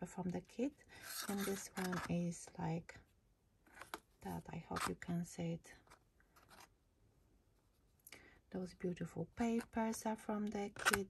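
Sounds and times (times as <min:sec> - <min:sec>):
paper card rustling: 0:05.8 - 0:06.7.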